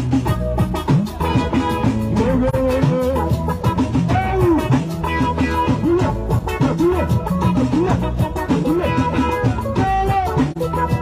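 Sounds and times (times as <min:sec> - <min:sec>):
live band with keyboard and guitar: 0:00.0 - 0:11.0.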